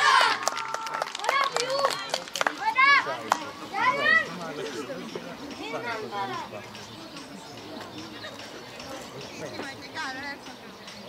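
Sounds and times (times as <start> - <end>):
children shouting: 0.0 - 4.5.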